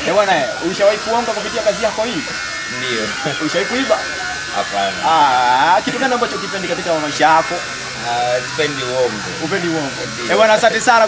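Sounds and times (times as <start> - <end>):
indistinct voices: 0.0 - 11.0
steady electric buzz: 0.0 - 11.0.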